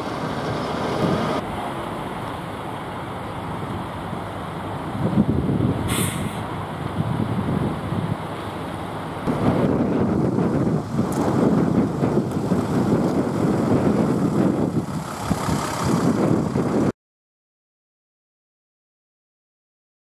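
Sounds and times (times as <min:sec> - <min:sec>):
vehicle engines idling: 0:00.0 - 0:16.9.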